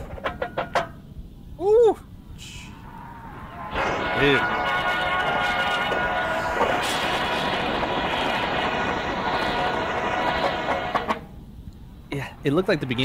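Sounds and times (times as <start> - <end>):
drumline and horns playing: 2.7 - 11.3.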